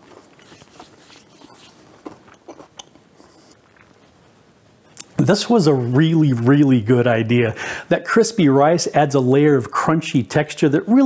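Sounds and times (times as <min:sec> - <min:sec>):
chewing and crunching: 0:00.0 - 0:04.3.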